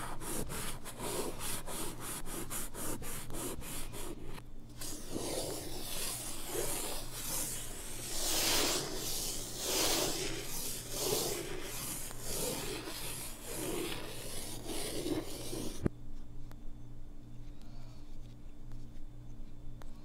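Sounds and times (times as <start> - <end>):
reversed chalk strokes on blackboard: 0.0 - 15.9.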